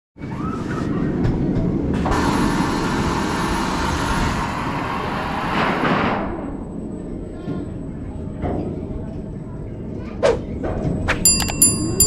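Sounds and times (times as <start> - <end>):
rumble: 0.2 - 12.0.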